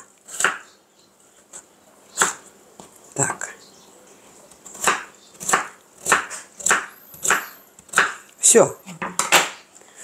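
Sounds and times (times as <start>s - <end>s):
knife chopping on wooden board: 0.4s - 0.6s, 4.7s - 8.2s.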